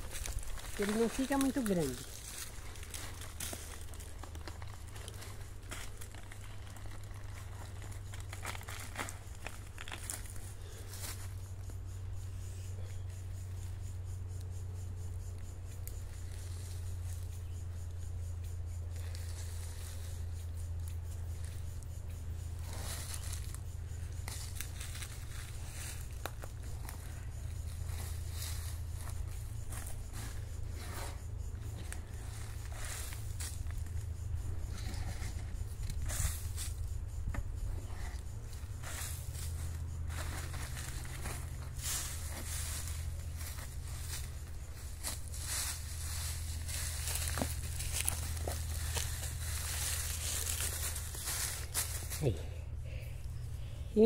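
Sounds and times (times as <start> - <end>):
hands rustling soil and leaves: 0.0 - 11.7, 18.8 - 54.0
steady low rumble: 2.0 - 53.9.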